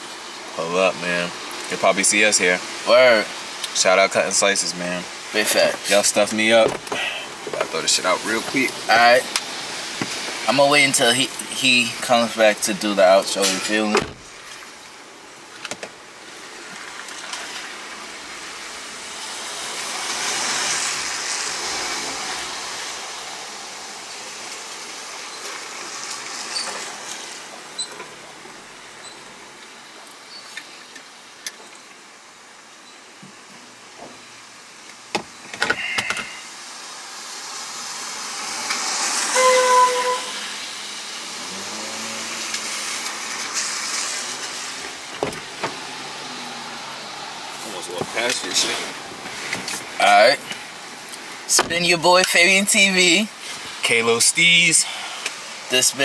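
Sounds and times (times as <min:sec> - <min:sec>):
tyre hiss of passing vehicles: 0:00.0 - 0:56.0
clicks and knocks inside car: 0:06.6 - 0:07.8, 0:45.1 - 0:45.8.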